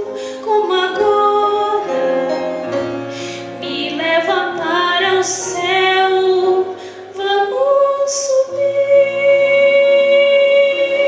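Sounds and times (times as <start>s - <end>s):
woman singing into microphone: 0.0s - 2.4s, 3.5s - 11.0s.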